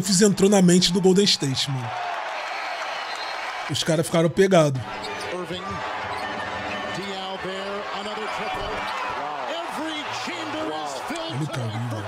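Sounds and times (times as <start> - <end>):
commentator speaking: 0.0 - 1.9
arena crowd noise: 0.0 - 12.0.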